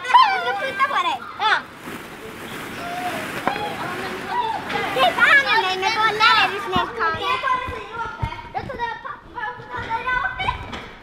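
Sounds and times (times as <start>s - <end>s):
children talking and calling out: 0.0s - 1.8s, 2.4s - 11.0s.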